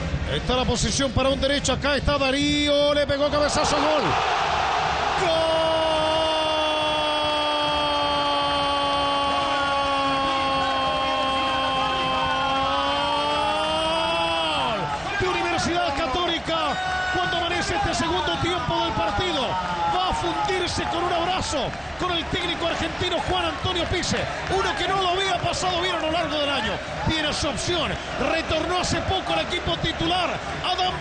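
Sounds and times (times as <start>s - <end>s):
stadium crowd noise: 0.0s - 31.0s
excited shouting: 3.4s - 31.0s.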